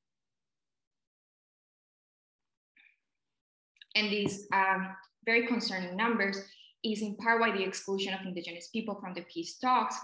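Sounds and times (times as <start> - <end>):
woman speaking: 3.9 - 10.0.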